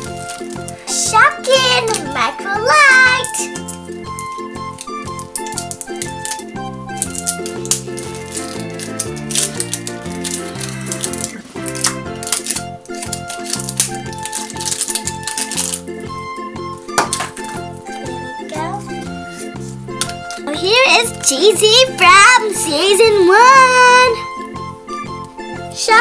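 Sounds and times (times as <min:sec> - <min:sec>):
toy wrapper crinkling: 0:00.0 - 0:15.9, 0:16.9 - 0:23.0
background music with bass line: 0:00.0 - 0:20.5.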